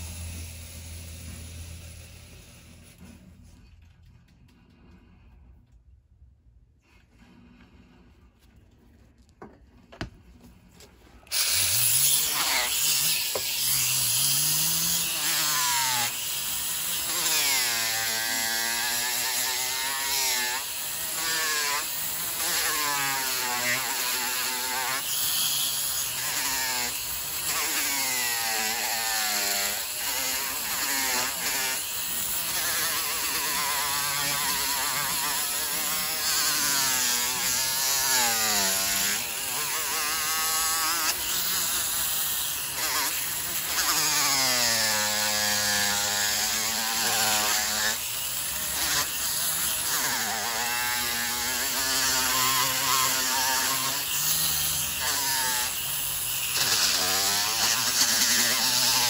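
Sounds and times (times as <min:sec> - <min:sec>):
rotary tool grinding: 0:10.6 - 0:59.0.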